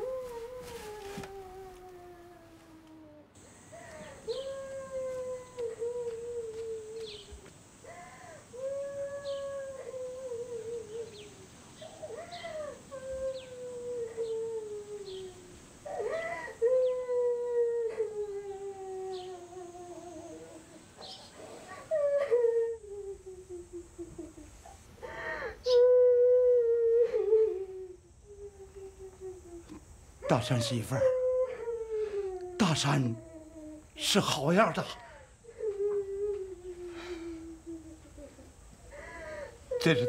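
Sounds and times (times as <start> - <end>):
long sliding howls: 4.1 - 23.6.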